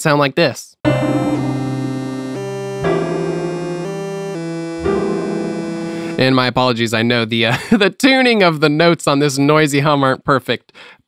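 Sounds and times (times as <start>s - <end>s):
synth piano chords: 0.9s - 6.6s
synth bass line: 0.9s - 6.7s.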